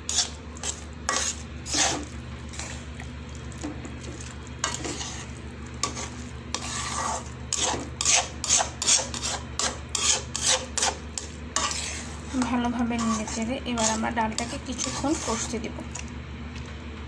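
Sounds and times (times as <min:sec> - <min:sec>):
spatula scraping metal pan: 0:00.0 - 0:02.8, 0:04.6 - 0:15.6
food frying in oil: 0:00.0 - 0:16.2
steady low hum: 0:00.0 - 0:17.0.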